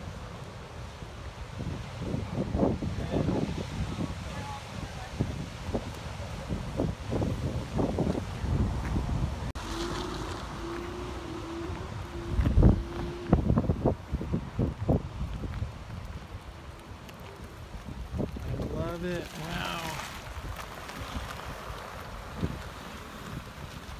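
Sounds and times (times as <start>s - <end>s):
ocean surf: 0.0s - 23.9s
wind buffeting microphone: 0.0s - 23.9s.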